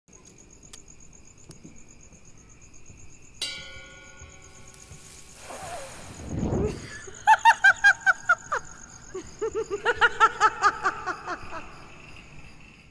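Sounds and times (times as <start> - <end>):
high insect-like chirping: 0.1 - 12.9
bell-like chime: 3.4 - 5.2.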